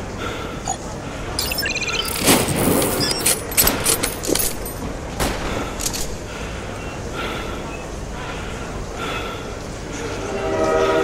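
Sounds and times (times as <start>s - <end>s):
electronic beeps: 0.6s - 3.7s.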